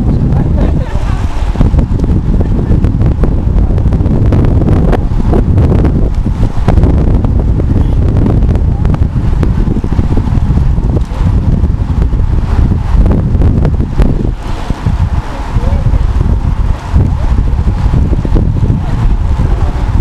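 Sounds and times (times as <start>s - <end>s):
wind buffeting pops: 0.0s - 20.0s
wind rumble on microphone: 0.0s - 20.0s.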